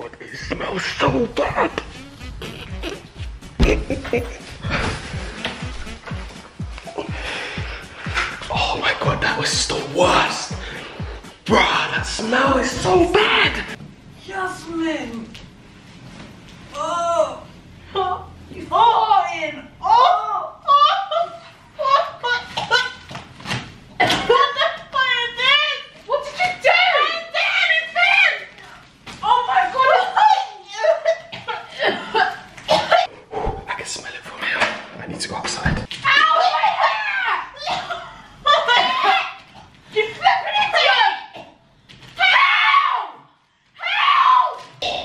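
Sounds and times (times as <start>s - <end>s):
people groaning and laughing: 0.4s - 8.5s
woman screaming: 19.8s - 23.0s, 36.0s - 39.4s, 42.2s - 43.2s, 43.8s - 44.7s.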